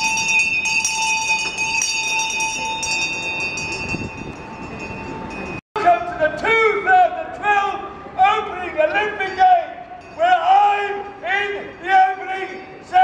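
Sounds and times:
handbell ringing: 0.0 - 5.6.

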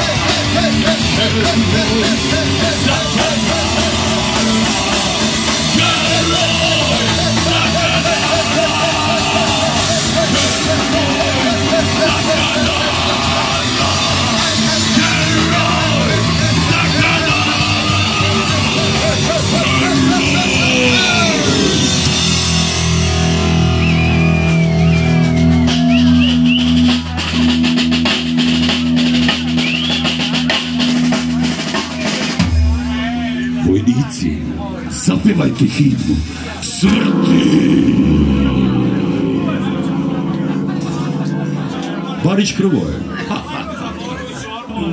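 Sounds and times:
rock band playing: 0.0 - 44.9
ringing final chord: 36.8 - 44.6.

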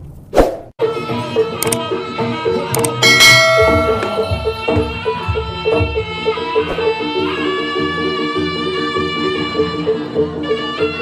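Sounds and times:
gamelan music: 2.8 - 6.1
drum beats: 2.8 - 7.0
metallic crash ringing: 3.0 - 4.8.

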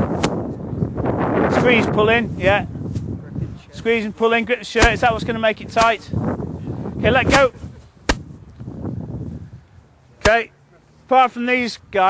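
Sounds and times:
sharp crack: 0.0 - 0.5, 4.7 - 6.0, 8.1 - 8.4, 10.2 - 10.4
low murmuring background noise: 3.1 - 4.2, 9.5 - 11.1.

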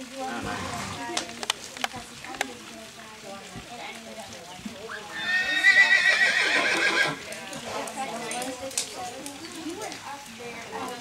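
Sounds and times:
horse whinnying: 5.1 - 7.2.

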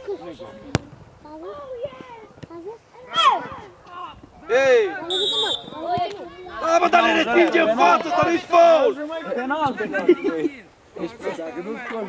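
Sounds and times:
voices shouting: 3.0 - 9.2.

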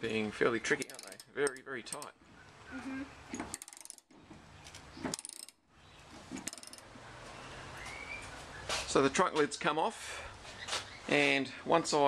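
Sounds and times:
socket ratchet clicking: 0.8 - 2.1, 3.5 - 4.0, 5.1 - 5.6, 6.4 - 6.9.

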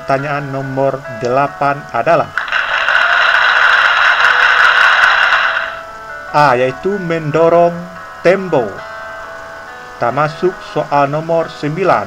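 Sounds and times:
loud rattling drum roll: 2.4 - 5.8.

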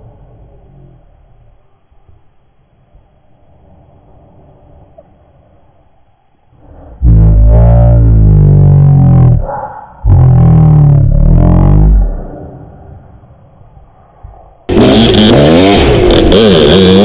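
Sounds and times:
dirt bike engine revving: 10.1 - 12.2, 14.7 - 17.0.

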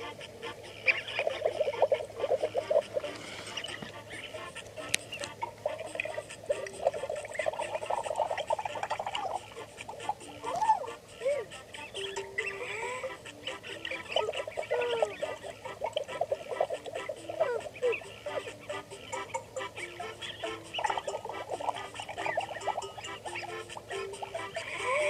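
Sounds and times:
cartoonish honking and quacking: 0.0 - 25.0
simple tune of held notes: 0.0 - 25.0.

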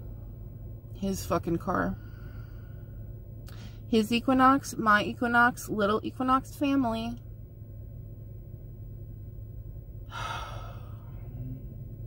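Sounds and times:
low rumble of car cabin: 0.0 - 12.0
woman sighing: 10.1 - 11.0.

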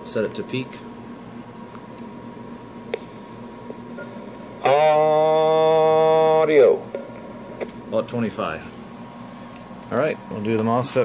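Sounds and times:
man holding a vowel: 4.6 - 6.8.

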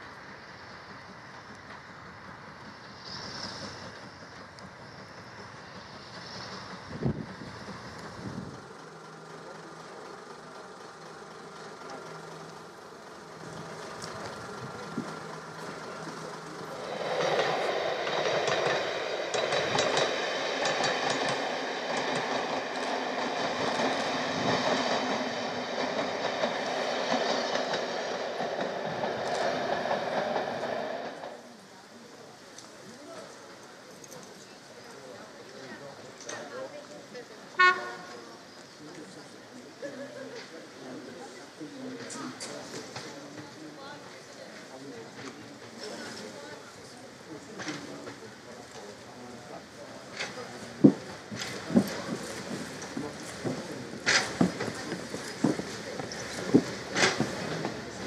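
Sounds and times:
train rumbling on rails: 0.0 - 58.0.

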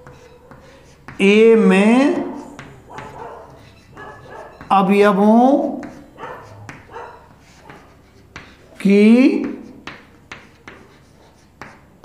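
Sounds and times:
chalk ticking on board: 0.0 - 1.2, 2.3 - 4.7, 5.7 - 8.8, 9.4 - 11.9
chalk scratching on chalkboard: 0.0 - 4.8, 5.6 - 12.0.

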